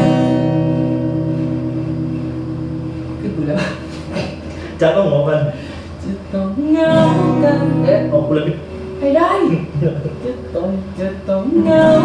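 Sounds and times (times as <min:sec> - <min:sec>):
acoustic guitar chord ringing: 0:00.0 - 0:04.1, 0:06.7 - 0:12.0.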